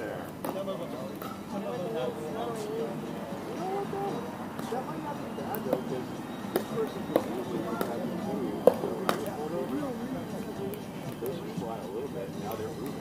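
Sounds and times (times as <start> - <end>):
people's voices: 0.0 - 13.0
paddles striking ball: 6.5 - 9.3.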